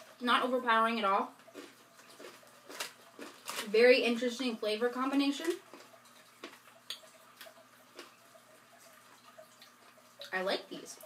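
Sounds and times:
chewing crisp chips: 0:01.3 - 0:03.7, 0:05.4 - 0:10.3.

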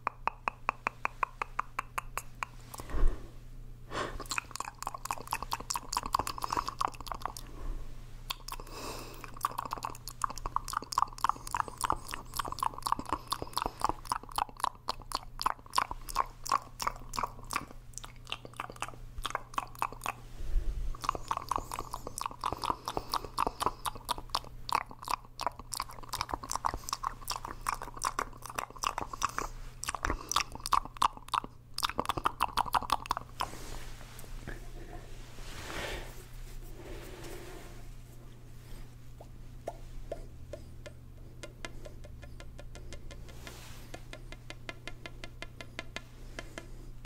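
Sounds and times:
mouth clicks and pops: 0:00.0 - 0:02.9, 0:04.2 - 0:07.5, 0:08.3 - 0:20.2, 0:21.0 - 0:33.5, 0:39.6 - 0:46.7.

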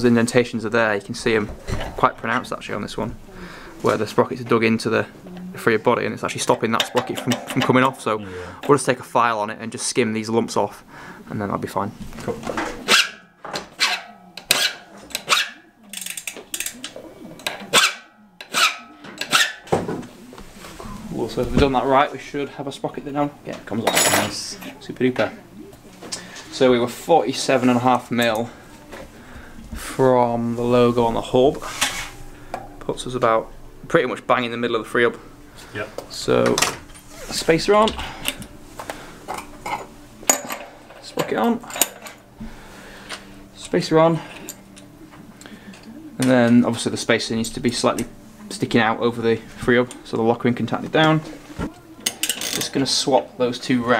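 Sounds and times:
metal file rasping: 0:17.7 - 0:19.6.

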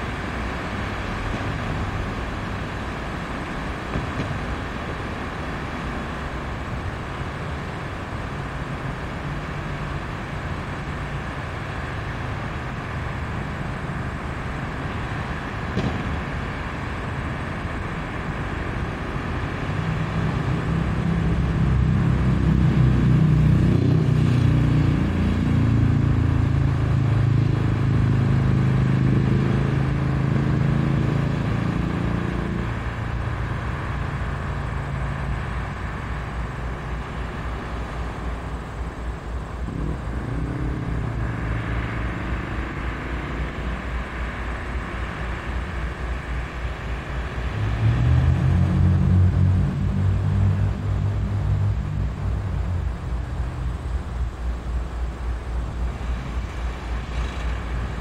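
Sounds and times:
diesel locomotive engine running: 0:00.0 - 0:58.0.

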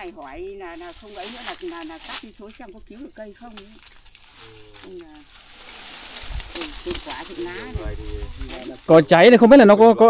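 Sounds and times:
low rumbling thumps: 0:04.2 - 0:09.2.

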